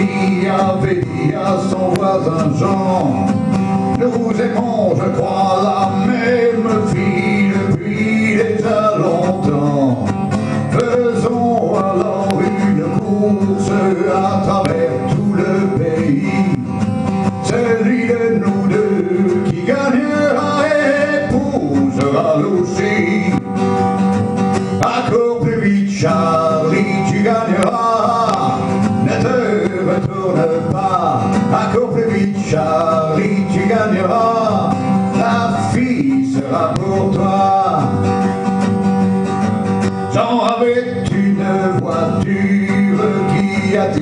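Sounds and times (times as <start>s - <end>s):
man singing: 0.0s - 38.6s, 40.0s - 44.0s
acoustic guitar strumming: 0.0s - 44.0s.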